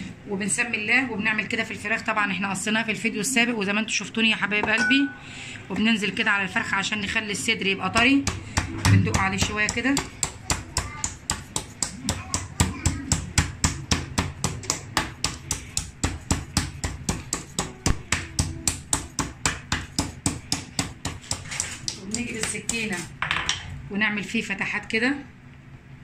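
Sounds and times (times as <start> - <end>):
mallet pounding meat on plastic board: 7.9 - 23.2.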